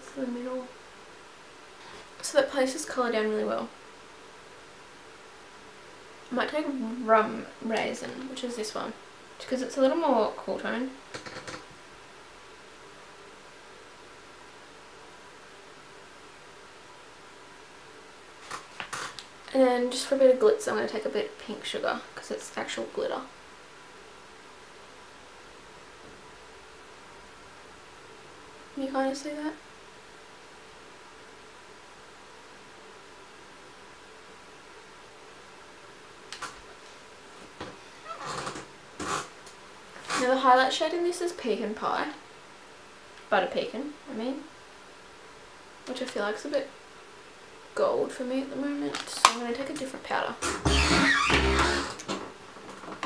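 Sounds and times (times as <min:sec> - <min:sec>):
room tone hiss: 0:00.0 - 0:53.0.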